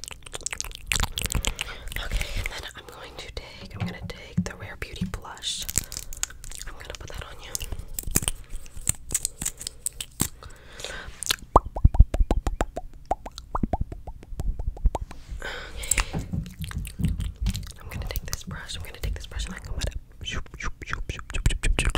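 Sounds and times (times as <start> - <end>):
soft close whispering: 1.2 - 9.9, 17.6 - 21.9
sharp clicks and taps: 3.6 - 6.3, 15.8 - 19.9
quick popping sounds: 3.6 - 6.7, 11.2 - 15.2, 15.8 - 19.8.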